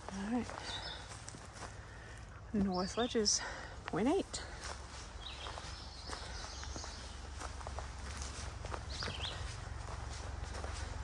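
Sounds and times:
footsteps on leaf-littered trail: 0.0 - 11.0.

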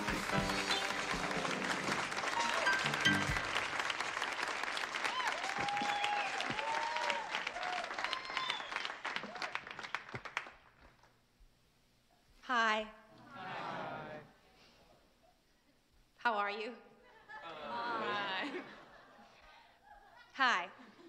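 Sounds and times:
band music: 0.0 - 3.8
audience applauding: 0.0 - 11.0
whistles: 5.8 - 6.3, 8.2 - 8.9.

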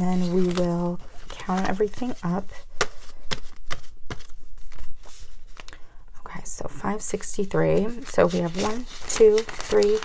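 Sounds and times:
paper bills rustling and flicking: 0.0 - 5.7, 7.4 - 10.0.

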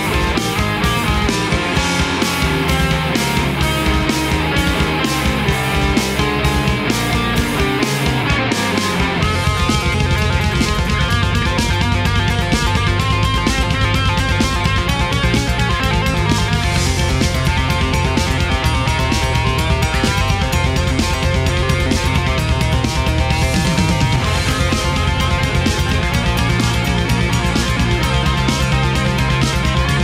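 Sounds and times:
bass guitar: 0.0 - 30.0
electric guitars playing riff: 0.0 - 30.0
steady drum beat: 0.0 - 30.0.

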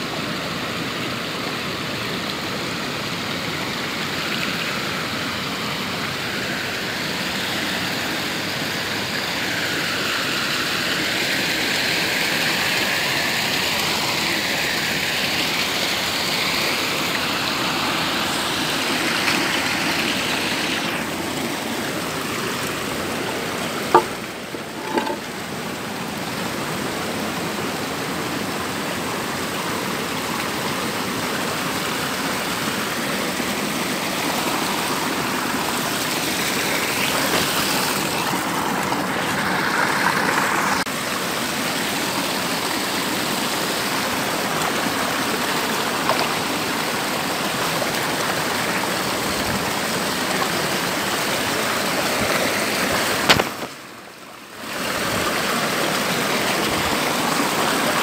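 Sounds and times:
stream rushing over stones: 0.0 - 58.0.

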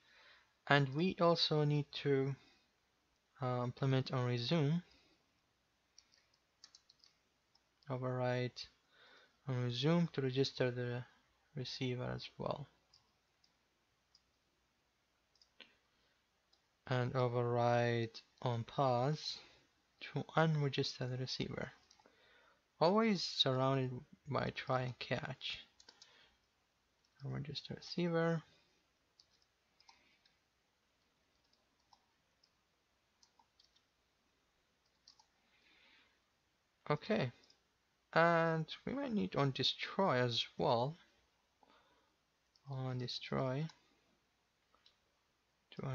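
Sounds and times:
keyboard and mouse clicks: 5.9 - 7.9, 12.9 - 14.4, 15.3 - 15.7, 21.8 - 22.1, 25.8 - 27.3, 29.1 - 30.4, 31.0 - 32.6, 33.2 - 34.0, 34.8 - 35.4
computer keyboard keystrokes: 6.0 - 7.7, 34.8 - 35.3.

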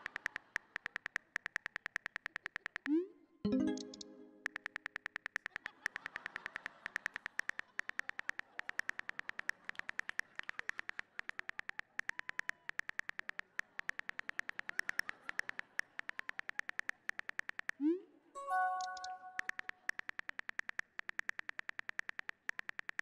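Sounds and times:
phone keyboard clicks: 0.0 - 17.8, 18.6 - 23.0.

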